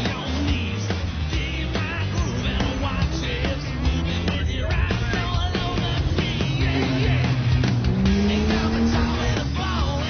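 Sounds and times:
off-road vehicle engine revving: 0.0s - 10.0s
rock music: 0.0s - 10.0s.

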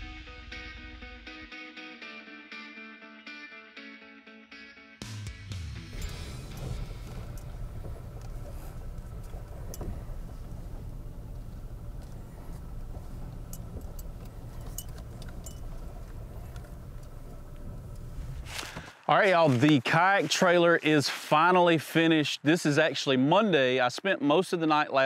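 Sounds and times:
truck engine low rumble: 5.9s - 19.0s.

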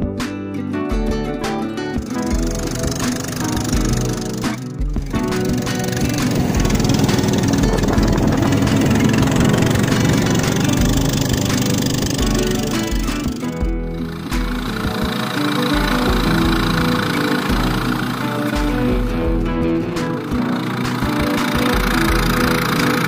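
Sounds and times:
instrumental music with bass line: 0.0s - 23.0s.

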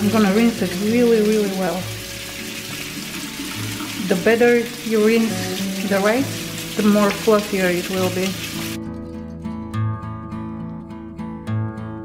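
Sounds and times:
soft music: 0.0s - 12.0s
water spraying onto rice: 0.1s - 8.8s.

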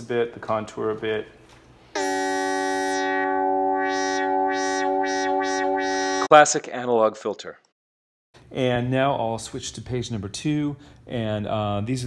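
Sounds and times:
synthesizer filter sweeps: 2.0s - 6.3s.

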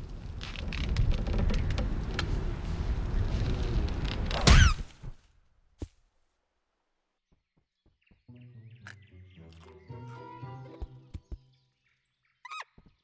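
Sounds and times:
soft orchestral music: 8.3s - 11.3s
squeaky cartoon rodent call: 12.4s - 12.7s.

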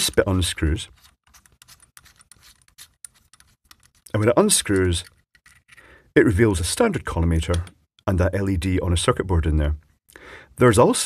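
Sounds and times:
threaded head unscrewing scraping: 1.0s - 4.1s, 4.7s - 5.8s.

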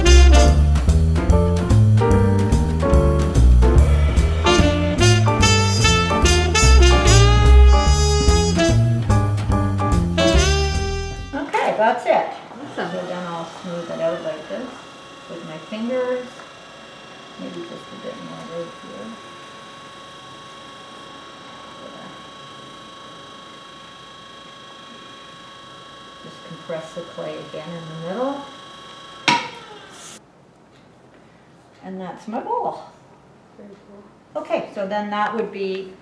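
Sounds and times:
pottery wheel motor hum: 0.0s - 30.2s.

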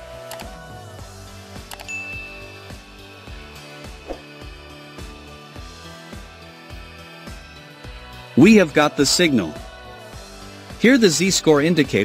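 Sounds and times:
background music with steady beat: 0.0s - 12.0s
short high ding: 1.9s - 2.9s.

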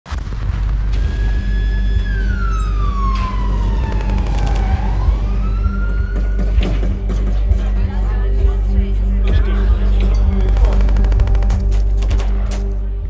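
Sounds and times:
siren wailing: 1.0s - 6.6s
sharp cracks: 3.2s - 5.0s.

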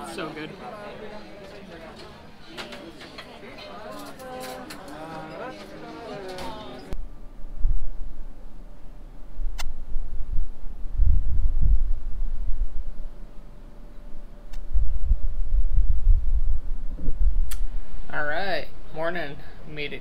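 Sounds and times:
wind buffeting microphone: 9.4s - 13.2s, 14.6s - 18.0s.

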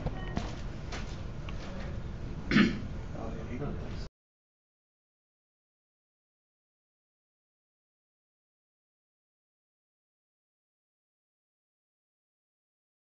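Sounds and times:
room noise: 0.0s - 4.1s
person clearing throat: 2.5s - 2.9s.

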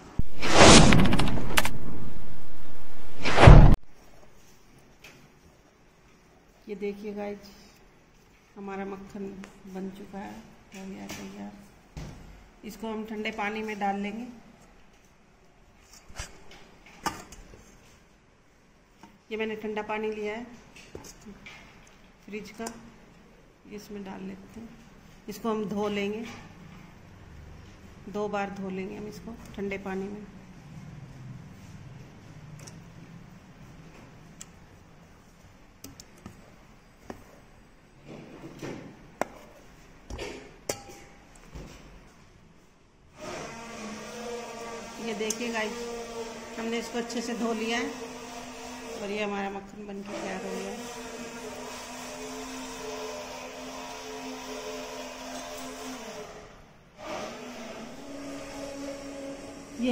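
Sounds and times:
spoon clinking against steel bowl: 40.7s - 41.2s.

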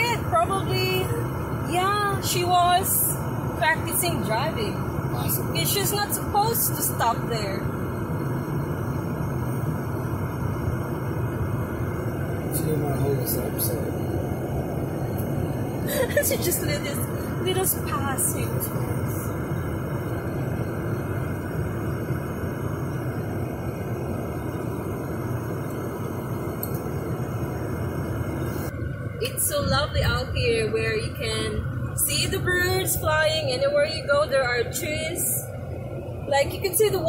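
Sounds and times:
car engine and tyre noise: 0.0s - 37.0s.

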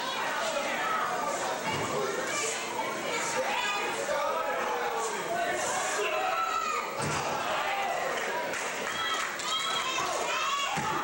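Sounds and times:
crowd shouting: 3.1s - 11.0s.

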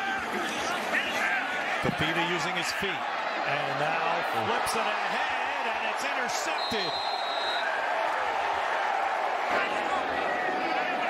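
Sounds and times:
stadium crowd din: 0.0s - 11.0s.

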